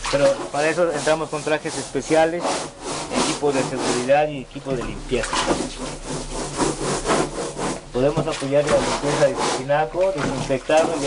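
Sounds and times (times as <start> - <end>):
hand scrubbing inside a tank: 0.0 - 11.0.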